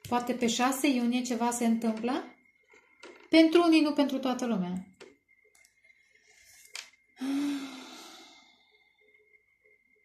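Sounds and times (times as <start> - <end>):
woman sighing: 7.2 - 8.6.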